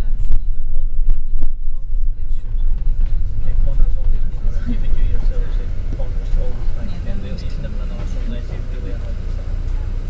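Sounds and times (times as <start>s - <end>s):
bus engine rumble: 0.0s - 10.0s
road noise: 0.0s - 10.0s.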